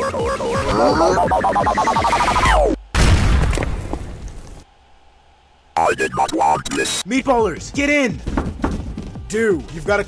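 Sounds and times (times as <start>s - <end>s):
cartoon music: 0.0s - 2.7s.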